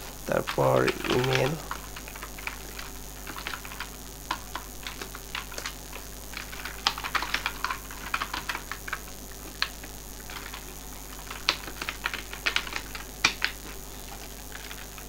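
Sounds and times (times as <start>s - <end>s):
computer keyboard typing: 0.0s - 15.0s.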